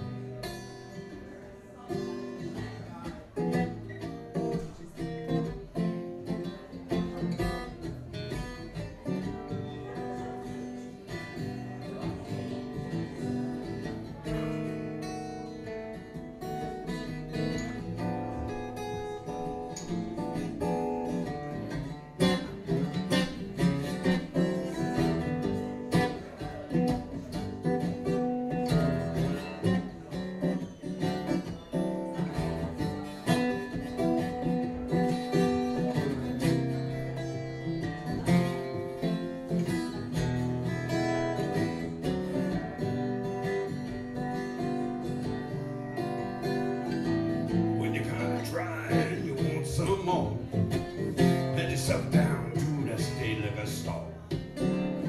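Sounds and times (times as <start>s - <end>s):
acoustic guitar strumming: 0.0s - 55.0s.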